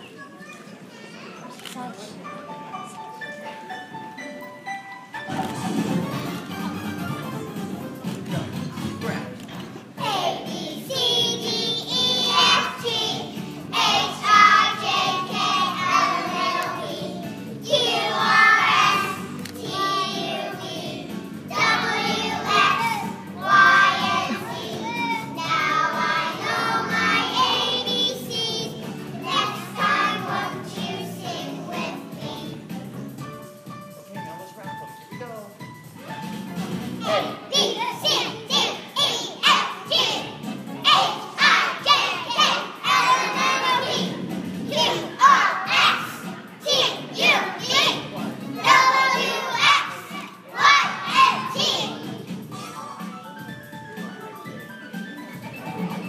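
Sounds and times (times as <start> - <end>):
children singing together: 10.0 - 32.7, 37.0 - 52.2
children shouting together: 37.0 - 40.2, 44.8 - 52.0.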